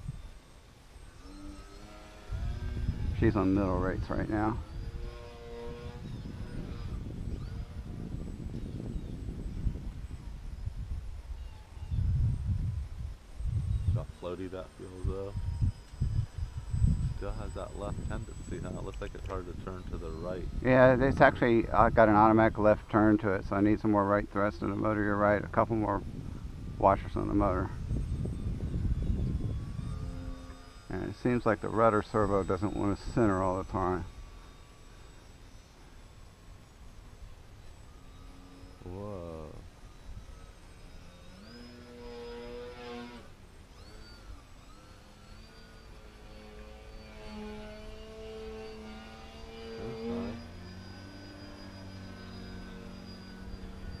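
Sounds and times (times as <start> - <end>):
model plane motor droning: 0.0 - 54.0
wind rumbling on microphone: 0.0 - 54.0.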